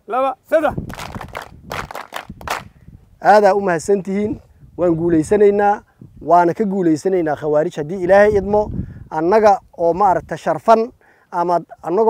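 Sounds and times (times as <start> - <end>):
scattered handclaps: 0.9 - 2.7.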